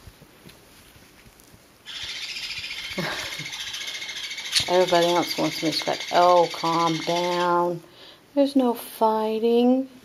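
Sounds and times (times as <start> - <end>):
faint soft rustles: 0.0 - 1.9
parrots squawking harshly: 1.9 - 7.8.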